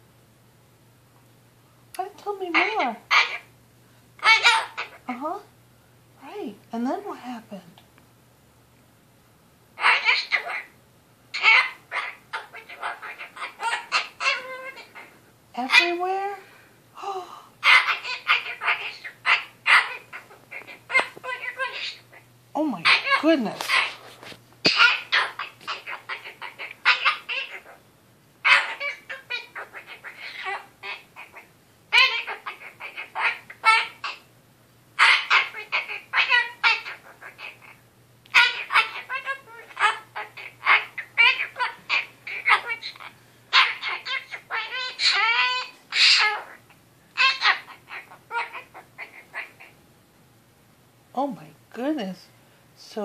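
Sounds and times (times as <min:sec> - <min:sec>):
cockatoo squawking: 0:02.5 - 0:03.6, 0:04.2 - 0:05.1, 0:09.8 - 0:16.3, 0:17.6 - 0:27.8, 0:28.4 - 0:34.3, 0:35.0 - 0:49.8.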